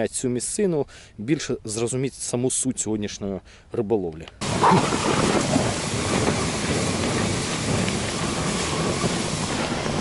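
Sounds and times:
wind blowing across microphone: 0:04.4 - 0:10.0.

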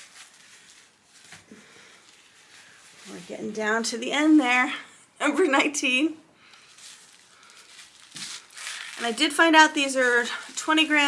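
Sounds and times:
gift wrapping rustling: 0:00.0 - 0:04.8, 0:06.4 - 0:11.0.

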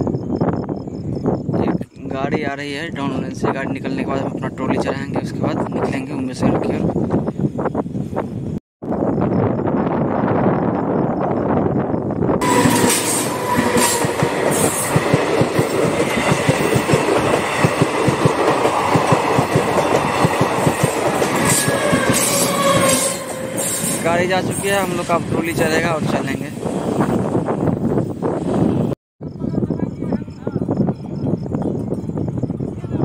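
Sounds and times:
high whine from train wheels: 0:09.0 - 0:28.9
train wheels clickety-clack: 0:12.5 - 0:24.9.

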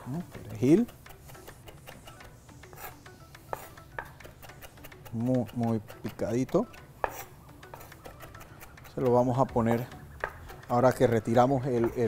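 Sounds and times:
knife chopping on wooden board: 0:00.0 - 0:11.1, 0:11.7 - 0:12.0.

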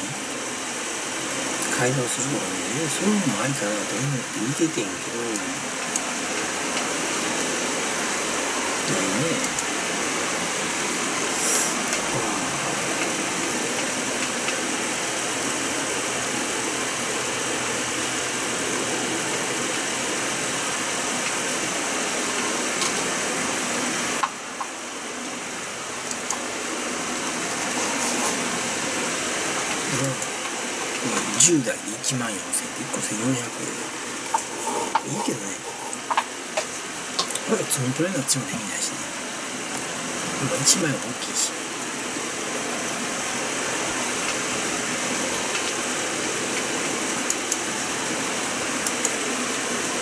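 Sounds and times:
steady hissing whir: 0:00.0 - 0:50.0
faint voices: 0:08.8 - 0:09.6, 0:11.2 - 0:13.5, 0:29.8 - 0:30.3, 0:31.0 - 0:39.1.

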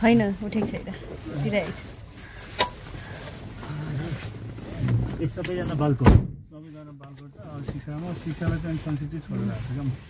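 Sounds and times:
faint road noise: 0:00.0 - 0:10.0.

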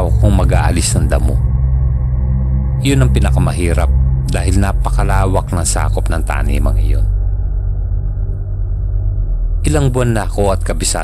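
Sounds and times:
low droning background music: 0:00.0 - 0:11.0.

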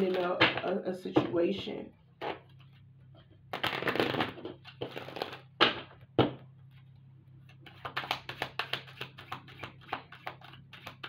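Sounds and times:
cards riffle-shuffled: 0:03.5 - 0:05.5, 0:07.5 - 0:11.0.

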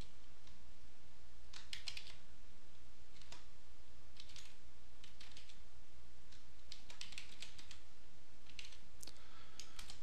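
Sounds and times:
computer keyboard typing: 0:01.5 - 0:02.2, 0:03.1 - 0:03.5, 0:04.1 - 0:05.6, 0:06.3 - 0:08.8, 0:09.6 - 0:10.0.

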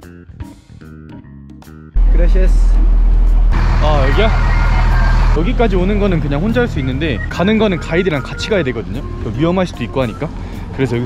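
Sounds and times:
bus engine rumbling: 0:02.0 - 0:11.0.

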